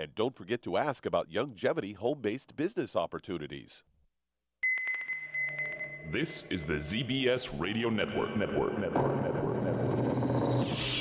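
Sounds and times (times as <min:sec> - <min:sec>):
high electronic tone: 0:08.0 - 0:11.0.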